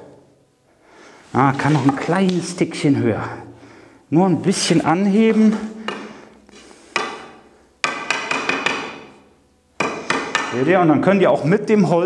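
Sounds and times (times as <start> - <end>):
wooden lath knocking on steel rail: 7.0 - 9.1, 9.8 - 10.6.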